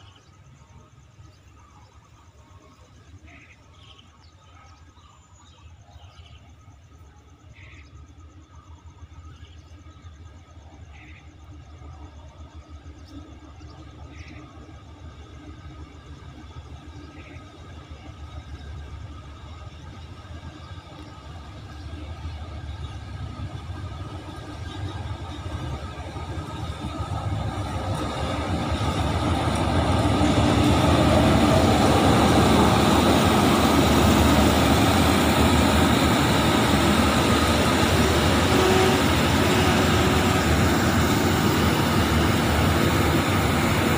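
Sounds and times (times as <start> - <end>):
diesel train rumbling past: 0.0 - 43.9.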